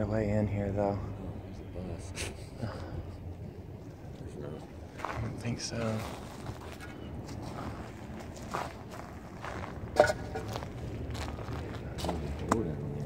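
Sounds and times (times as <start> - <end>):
footsteps on debris and gravel: 4.9 - 12.5.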